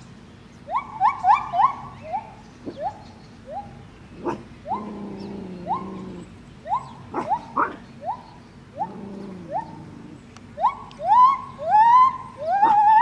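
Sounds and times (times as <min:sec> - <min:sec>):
longer lower animal call: 0:00.7 - 0:13.0.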